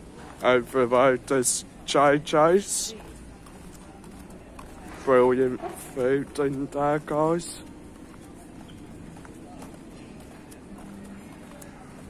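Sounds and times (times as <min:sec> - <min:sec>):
faint footsteps on pavement: 0:00.0 - 0:12.0
low street background noise: 0:00.0 - 0:12.0.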